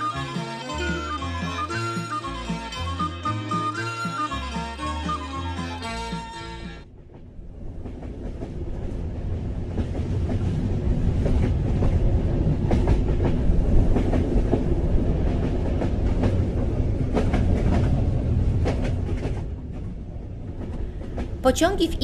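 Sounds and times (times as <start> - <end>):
train rumbling: 0.0 - 22.0.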